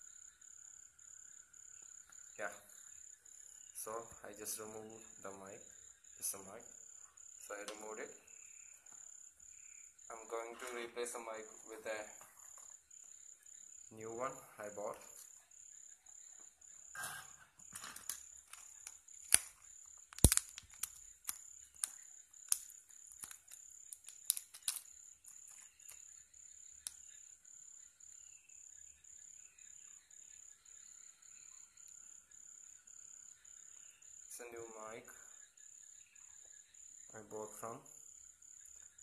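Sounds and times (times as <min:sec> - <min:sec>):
faint pulsing high chirp: 0:00.0 - 0:20.1, 0:24.8 - 0:39.0
sharp snaps: 0:18.0 - 0:26.1
plastic packet crinkling: 0:20.2 - 0:21.4, 0:22.5 - 0:24.8.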